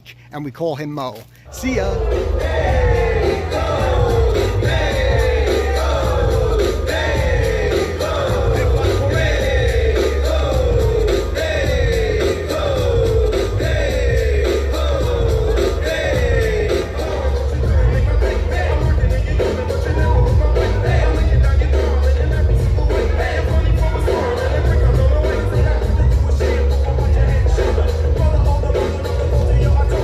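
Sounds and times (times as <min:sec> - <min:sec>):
dance music with heavy bass: 0:01.5 - 0:30.0.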